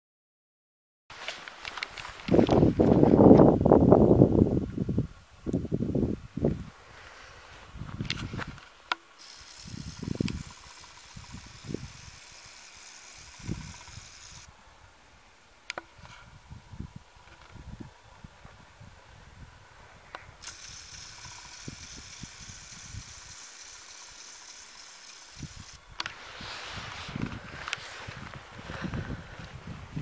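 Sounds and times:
faint wind buffeting microphone: 1.9s - 8.7s, 9.3s - 12.6s, 13.2s - 15.3s, 15.9s - 23.5s, 25.3s - 30.0s.

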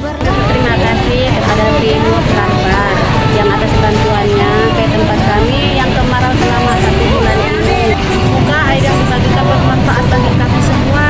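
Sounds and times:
woman speaking: 0.0s - 11.0s
low rumble: 0.2s - 11.0s.

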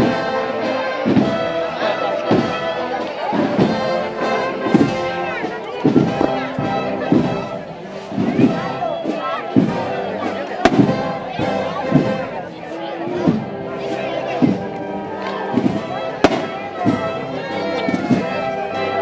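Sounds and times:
band playing slow march: 0.0s - 19.0s
bass drum beat: 10.6s - 12.4s.

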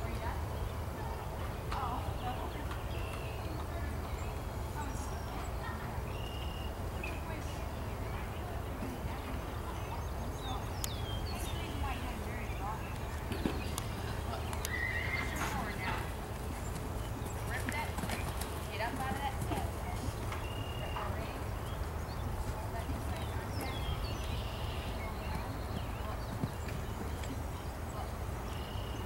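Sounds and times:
faint voices: 0.0s - 29.0s
horse hoofbeats on dirt: 4.8s - 28.8s.

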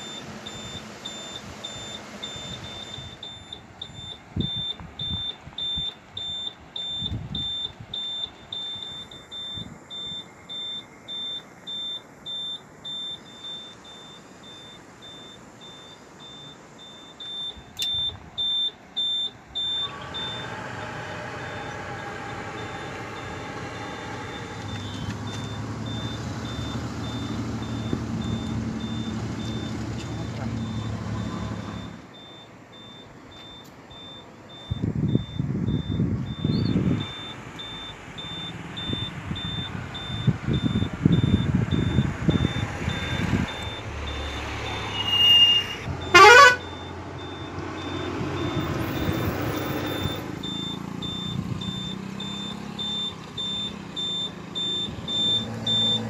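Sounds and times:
faint electronic beep: 0.0s - 20.4s, 22.6s - 56.0s
low engine hum: 0.0s - 56.0s.

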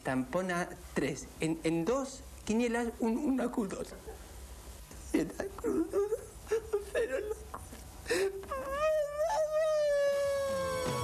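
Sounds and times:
man crying comically: 5.5s - 7.5s, 8.1s - 11.0s.

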